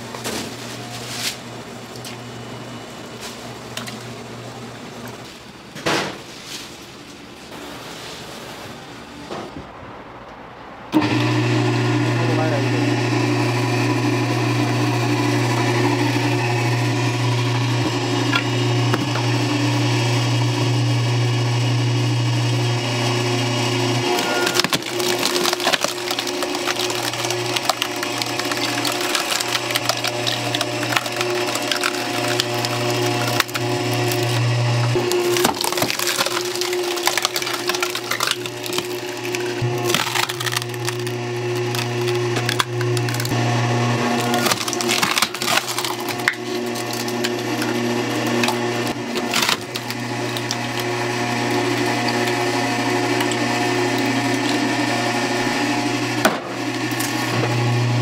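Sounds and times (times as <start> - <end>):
hydraulic pump humming: 10.9 - 58.0
wood cracking and splintering: 24.1 - 43.4, 44.1 - 55.6.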